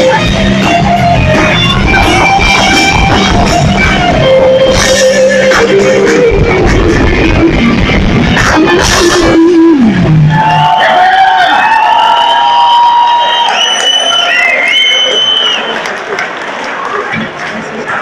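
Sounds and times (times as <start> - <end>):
punk rock band playing live: 0.0 - 10.8
crowd noise: 0.0 - 18.0.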